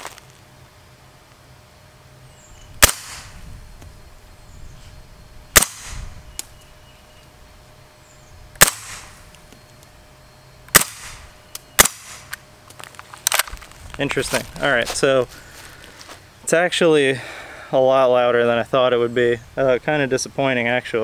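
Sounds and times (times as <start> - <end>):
suppressed gunshots with echo: 2.8 - 3.4, 5.6 - 6.1, 8.6 - 9.2, 10.7 - 11.2, 11.8 - 12.3.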